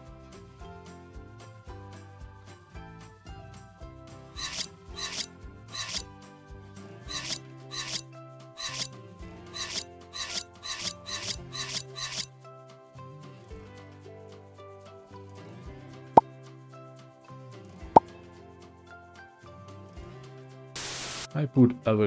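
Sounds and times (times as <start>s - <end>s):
background music: 0.0s - 22.0s
knife scraping on glass board: 4.4s - 6.0s, 7.1s - 8.0s, 8.6s - 8.9s, 9.6s - 12.3s.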